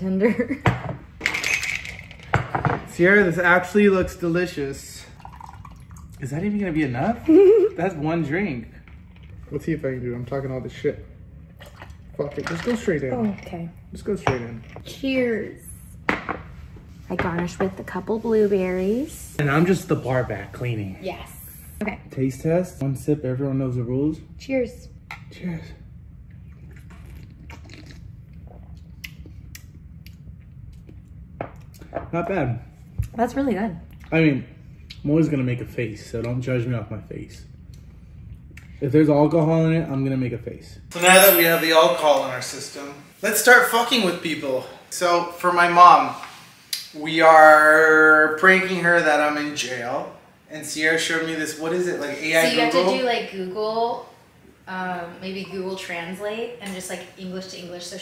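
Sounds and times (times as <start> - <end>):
low room hum: 0.0 - 58.0.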